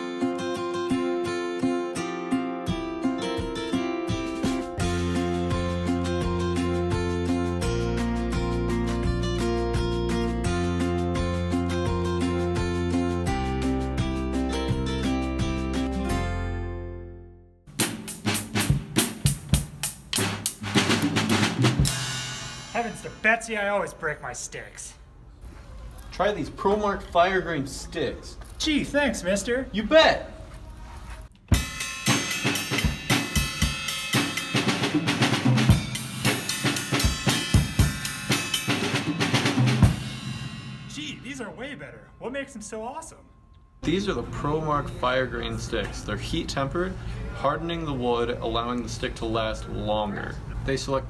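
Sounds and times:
strummed guitar: 0.0s - 16.6s
drum kit groove: 17.7s - 23.9s, 31.4s - 41.6s
cymbals ringing: 21.8s - 23.9s, 31.6s - 46.1s.

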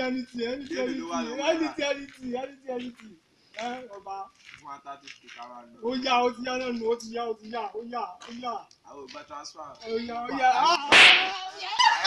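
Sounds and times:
excited voices: 10.3s - 12.0s
sharp loud slap: 10.9s - 11.5s.

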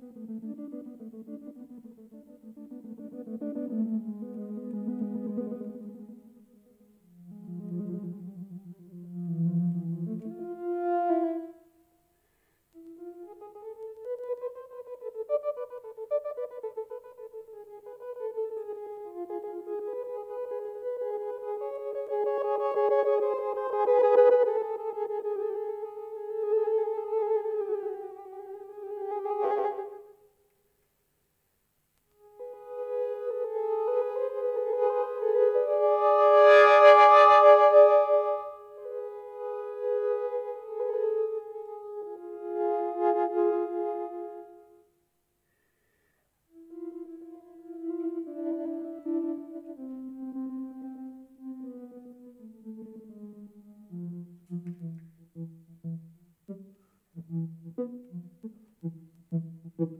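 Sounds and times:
electronic wind instrument melody: 0.0s - 11.8s, 12.7s - 30.2s, 32.2s - 44.9s, 46.5s - 59.9s.

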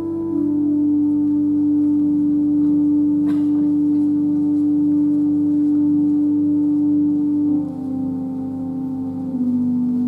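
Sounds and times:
church organ chord: 0.0s - 10.0s.

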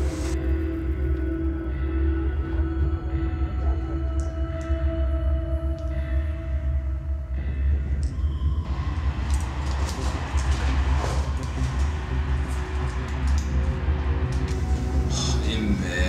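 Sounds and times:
deep low rumbling drone: 0.0s - 16.0s.

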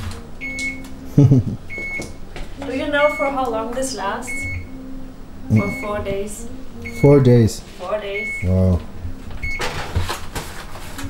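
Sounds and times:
short electronic beep: 4.3s - 4.8s, 5.5s - 6.0s, 6.8s - 7.2s, 8.1s - 8.6s
foil tray clattering on metal rack: 9.6s - 11.0s.

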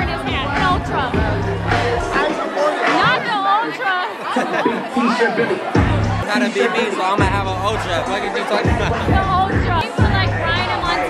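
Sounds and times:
people chattering excitedly: 0.0s - 11.0s.

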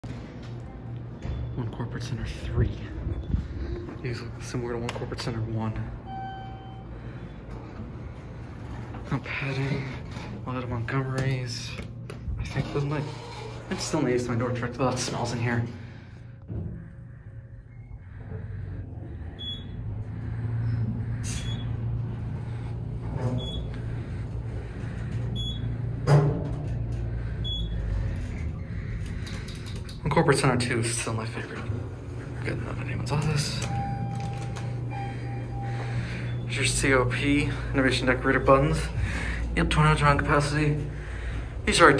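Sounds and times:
steady low hum: 0.0s - 41.9s
elevator arrival chime: 5.8s - 7.6s, 33.2s - 37.6s.

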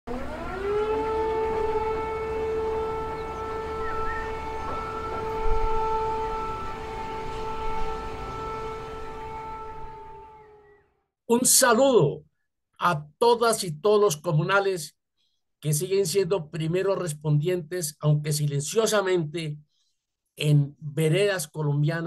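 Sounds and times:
warning siren wailing: 0.1s - 11.1s.

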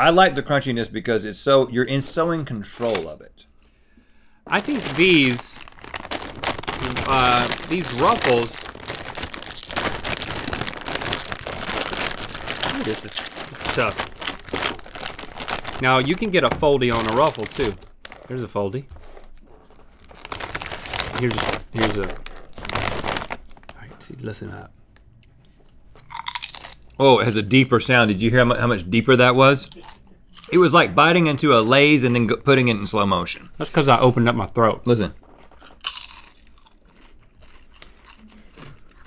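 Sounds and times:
plastic chip bag crinkling: 2.0s - 3.2s, 4.5s - 24.2s, 26.0s - 26.9s, 34.9s - 39.0s
chewing crunches: 4.6s - 15.8s, 26.0s - 27.0s, 35.5s - 39.0s.

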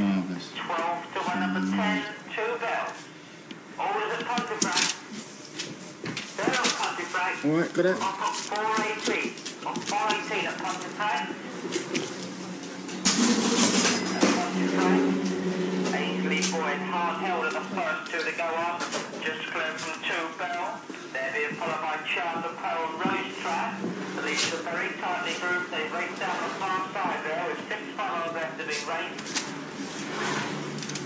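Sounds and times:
steady hum: 0.0s - 30.0s
voices talking: 6.4s - 29.2s.

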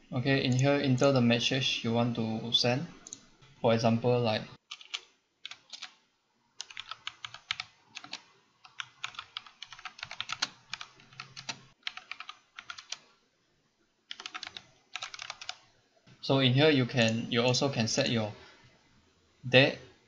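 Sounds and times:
typing on computer keyboard: 4.7s - 6.0s, 6.6s - 13.0s, 14.1s - 15.6s.

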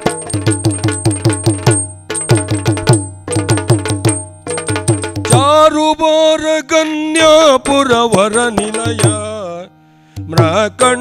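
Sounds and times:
drums struck rapidly: 0.0s - 5.7s, 7.7s - 9.4s, 10.2s - 11.0s.

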